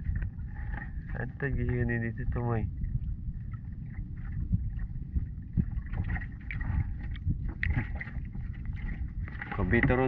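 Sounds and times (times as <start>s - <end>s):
water along boat hull: 0.0s - 10.0s
wind on microphone: 0.0s - 10.0s.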